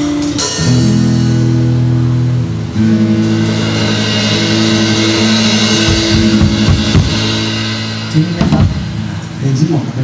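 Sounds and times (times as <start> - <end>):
rock band chords: 0.0 - 10.0
cymbal wash: 2.8 - 9.4.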